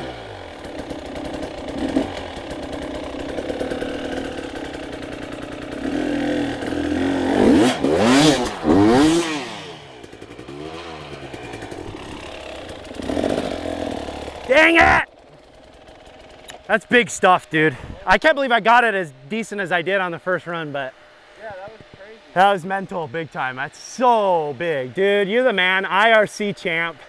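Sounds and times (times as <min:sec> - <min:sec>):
dirt bike engine revving: 0:00.0 - 0:27.0.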